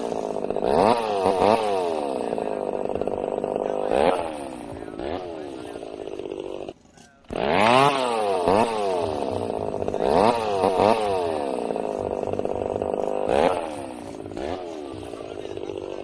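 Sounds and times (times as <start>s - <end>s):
motorcycle engine revving: 0.0s - 16.0s.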